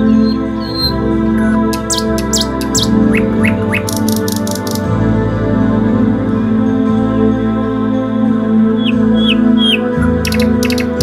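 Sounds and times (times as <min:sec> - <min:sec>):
small birds chirping: 0:00.0 - 0:04.9, 0:08.7 - 0:11.0
new-age background music: 0:00.0 - 0:11.0.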